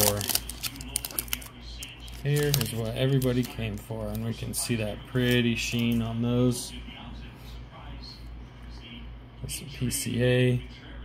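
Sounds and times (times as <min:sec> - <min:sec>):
plastic wrapper crinkling: 0:00.0 - 0:04.5.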